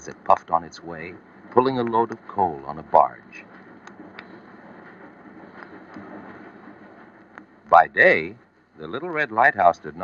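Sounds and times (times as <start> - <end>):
vinyl record surface noise: 0.0 - 10.0.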